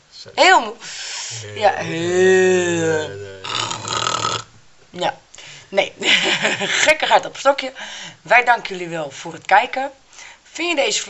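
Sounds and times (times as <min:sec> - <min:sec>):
raspy breathy vocal noise: 0:00.9 - 0:04.5
woman's drawn-out voice: 0:01.3 - 0:03.8.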